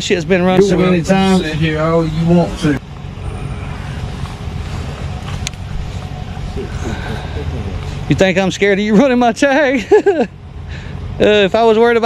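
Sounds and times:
steady low rumble: 0.3 - 8.2.

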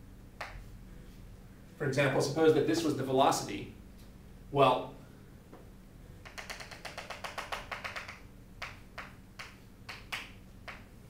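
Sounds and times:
chalk tapping on chalkboard: 6.2 - 10.9.

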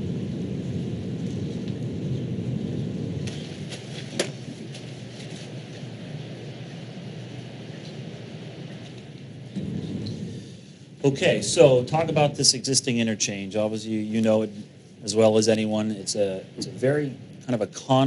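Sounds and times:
microphone handling rumble: 0.0 - 18.0.

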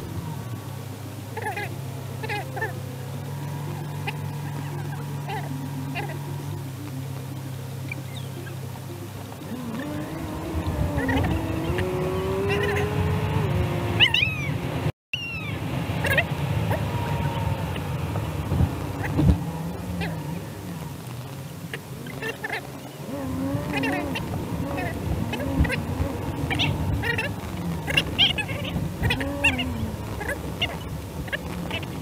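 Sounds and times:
car road and engine noise: 0.0 - 32.0
gliding calls and squeaks: 1.4 - 32.0.

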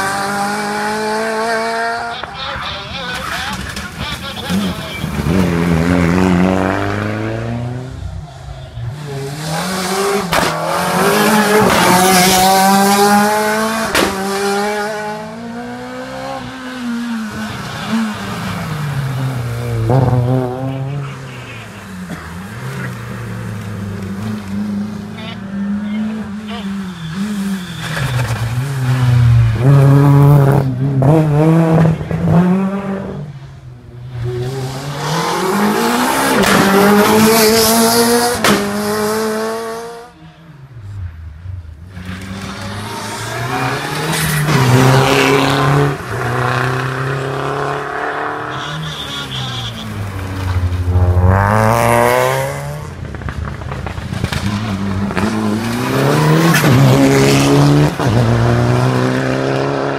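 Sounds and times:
rally car engines revving: 0.0 - 59.9.

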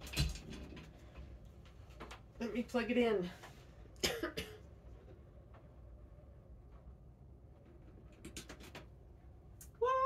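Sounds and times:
person coughing: 4.0 - 4.7.

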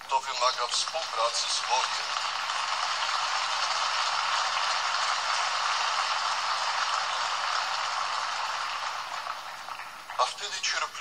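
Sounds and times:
applause through telephone line: 0.0 - 11.0.

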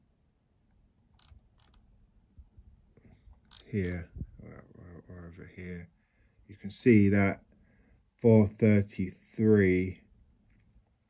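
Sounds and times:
computer mouse clicking: 1.1 - 1.8.

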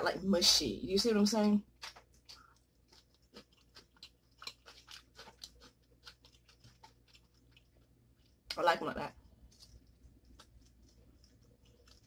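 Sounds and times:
faint chewing noodles: 1.4 - 12.0.

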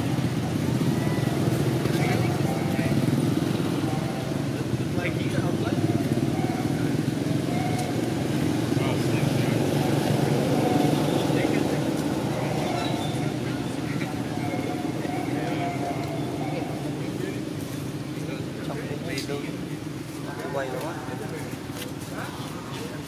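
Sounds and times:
indistinct voices: 0.0 - 19.6.

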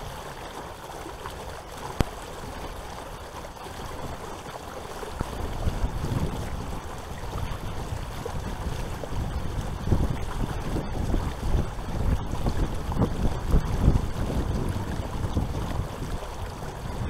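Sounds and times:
wind buffeting microphone: 5.0 - 17.0.

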